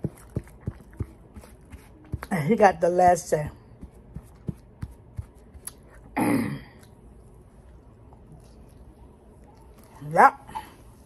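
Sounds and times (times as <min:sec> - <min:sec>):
woman clearing her throat: 0:06.1 - 0:06.8.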